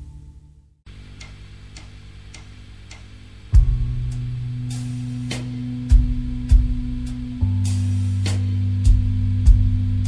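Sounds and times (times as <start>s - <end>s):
soft even click ticks: 0.9s - 3.5s
band with bass and guitar: 3.6s - 10.0s.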